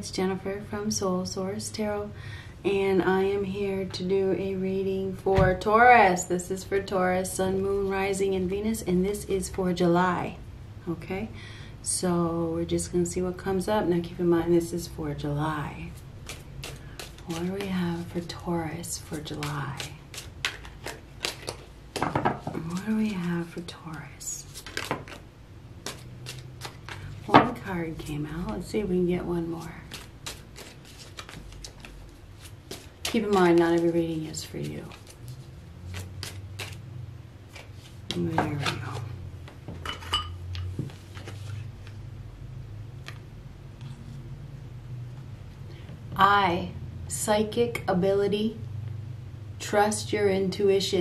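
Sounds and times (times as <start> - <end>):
steady low hum: 0.0 - 51.0
cards being shuffled: 15.9 - 27.3, 29.5 - 36.9, 37.5 - 39.6, 40.5 - 42.0
cards snapping: 16.2 - 17.6, 19.3 - 22.1, 24.6 - 25.2, 25.8 - 27.1, 29.9 - 33.6, 35.9 - 36.8.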